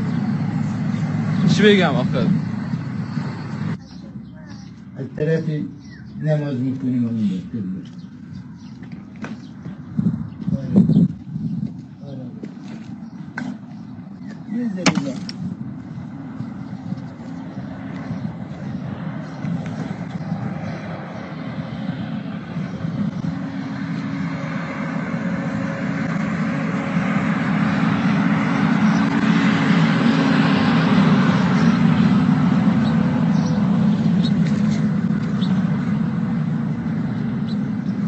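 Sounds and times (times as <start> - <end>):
low engine rumble: 0.0 - 38.0.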